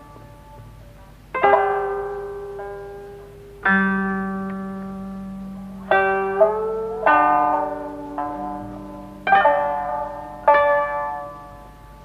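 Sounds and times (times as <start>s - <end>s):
plucked string notes: 0.0s - 12.0s.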